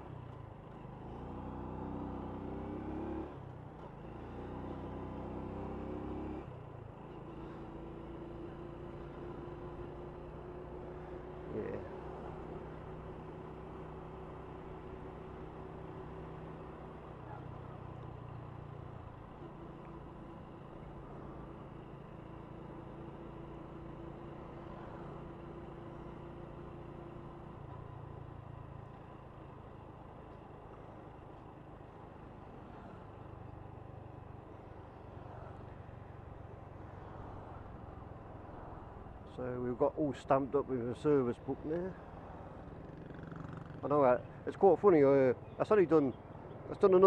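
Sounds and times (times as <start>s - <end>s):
road and wind noise: 0.0s - 47.0s.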